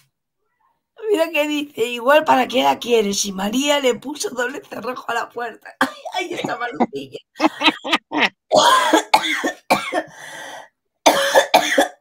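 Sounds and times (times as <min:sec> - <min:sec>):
woman laughing hard: 0:06.3 - 0:08.6.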